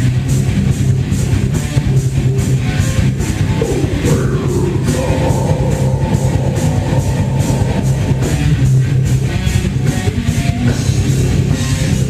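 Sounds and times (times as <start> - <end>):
heavy metal band playing live: 0.0 - 12.0.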